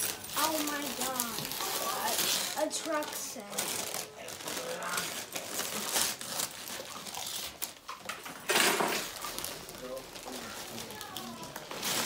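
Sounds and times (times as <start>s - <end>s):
wrapping paper rustling: 0.0s - 12.0s.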